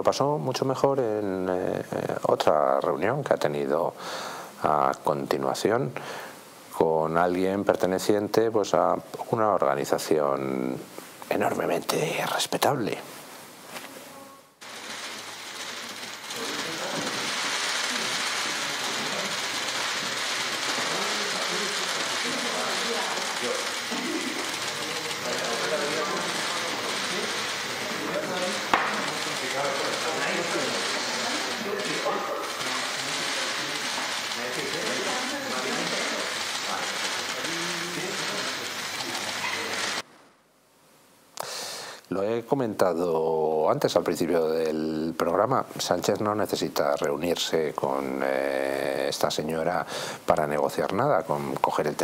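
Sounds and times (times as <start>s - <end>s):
camera shutters clicking rapidly: 14.6s - 40.0s
voices talking: 16.3s - 40.0s.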